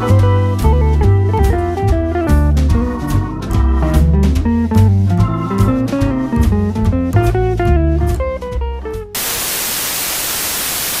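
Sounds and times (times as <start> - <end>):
white noise static hiss: 9.2 - 11.0.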